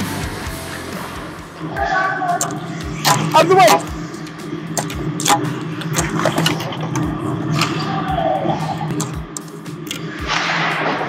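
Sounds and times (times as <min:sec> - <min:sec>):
steady low hum: 0:00.3 - 0:11.0.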